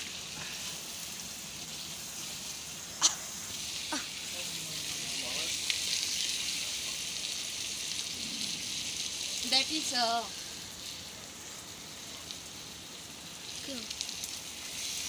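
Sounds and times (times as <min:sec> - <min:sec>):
curry sizzling in a wok: 0:00.0 - 0:15.0.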